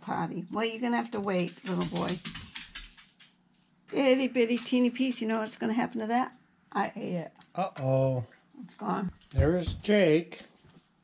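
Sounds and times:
dog toenails clicking on hard floor: 0:01.1 - 0:05.8.

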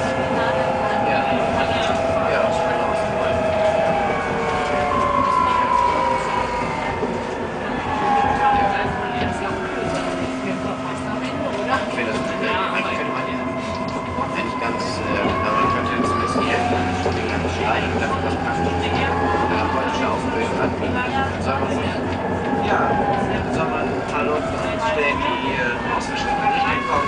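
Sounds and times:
tram running gear rumble: 0:00.0 - 0:27.0
tram whine: 0:00.0 - 0:27.0.

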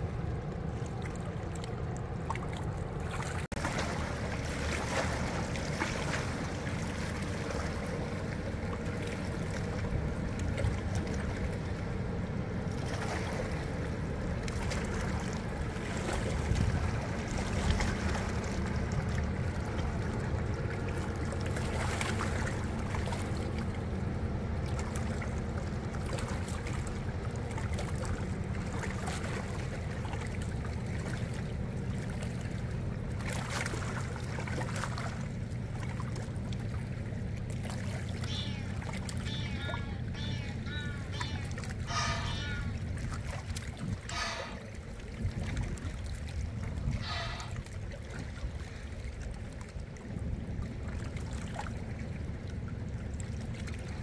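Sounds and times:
water lapping: 0:00.0 - 0:54.0
steady low drone: 0:37.8 - 0:45.4, 0:46.0 - 0:49.2.

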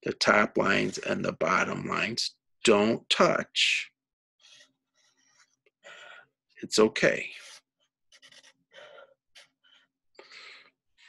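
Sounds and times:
marker scratching on paper: 0:07.4 - 0:09.6.

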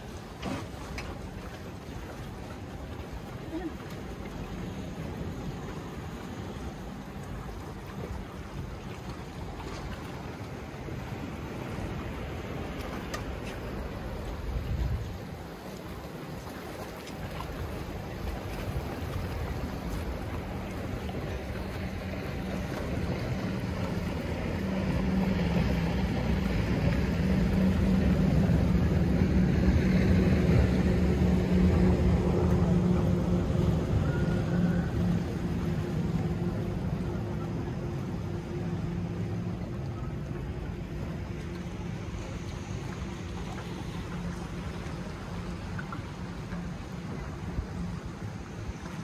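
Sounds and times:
boat engine droning: 0:00.0 - 0:49.0
waves: 0:00.0 - 0:49.0
wind: 0:00.0 - 0:49.0.

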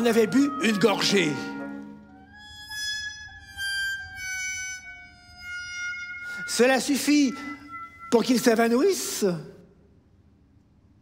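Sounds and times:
orchestra playing quiet high notes: 0:00.0 - 0:02.4, 0:06.1 - 0:09.3.

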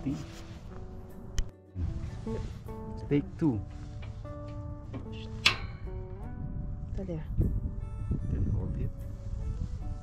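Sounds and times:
guitar music: 0:00.0 - 0:08.2
piezo igniter click: 0:04.0 - 0:06.1.

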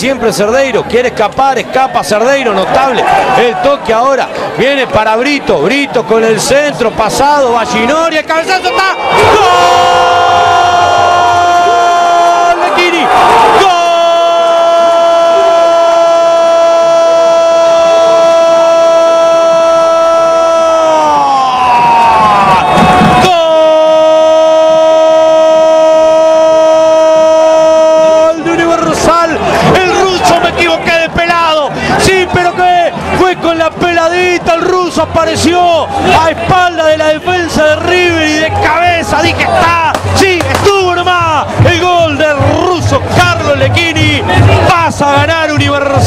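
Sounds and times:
excited rapid commentary: 0:00.0 - 0:10.0, 0:11.4 - 0:17.4, 0:26.2 - 0:46.0
commentator shouting goal call: 0:11.2 - 0:21.3, 0:23.2 - 0:46.0.

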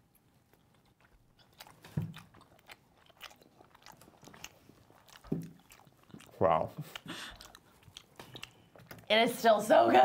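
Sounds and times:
close chewing with mouth smacks: 0:00.0 - 0:10.0.

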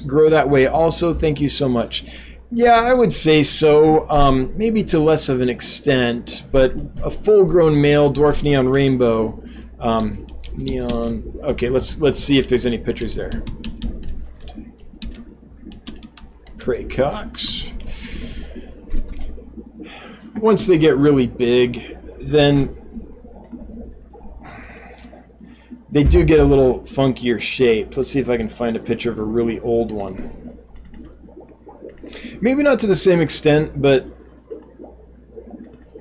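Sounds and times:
steady low hum: 0:00.0 - 0:36.0
computer keyboard clicks: 0:13.3 - 0:16.6
breath out: 0:24.4 - 0:25.6.

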